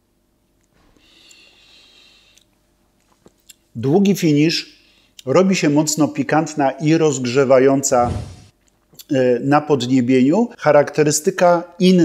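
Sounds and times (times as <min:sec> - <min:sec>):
soft breath through the nose: 0:00.8 - 0:02.5.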